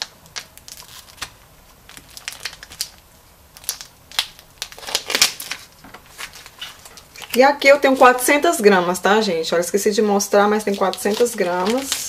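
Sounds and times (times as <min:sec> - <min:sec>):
plastic film peeled off tub: 0:00.0 - 0:03.0, 0:03.6 - 0:08.2, 0:10.6 - 0:12.0
packaging crinkling: 0:00.0 - 0:08.3, 0:10.5 - 0:12.0.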